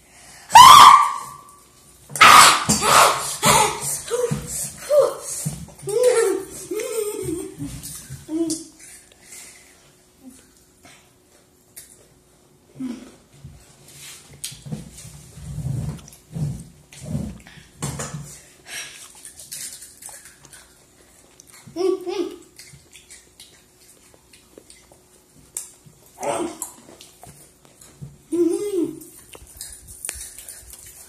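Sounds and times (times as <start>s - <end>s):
chewing crunchy snacks: 18.8s - 21.8s, 22.4s - 28.0s, 29.0s - 31.0s.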